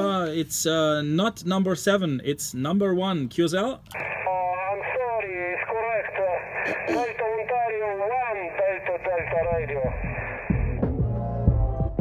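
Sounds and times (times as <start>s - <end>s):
thin voice over shortwave radio: 4.0s - 10.3s
music: 9.6s - 12.0s.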